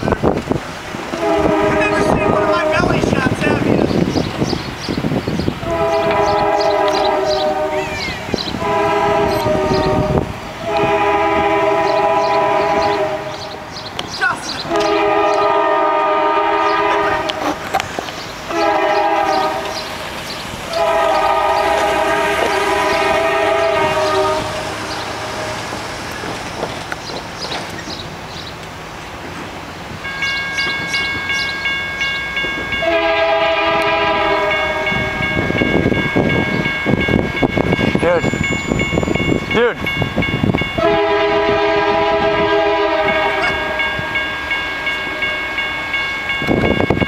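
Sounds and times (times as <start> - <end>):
train rumble: 0.0 - 47.0
locomotive air horn blasts: 1.1 - 3.2, 5.6 - 13.6, 14.6 - 17.6, 18.5 - 19.9, 20.7 - 25.6, 32.8 - 35.6, 40.8 - 45.8.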